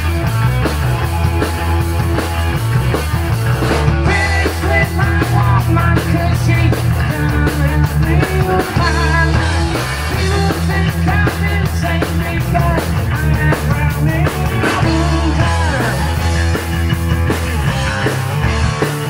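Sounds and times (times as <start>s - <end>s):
drum kit: 0.0s - 19.0s
electric guitars: 0.0s - 19.0s
rock band playing: 0.0s - 19.0s.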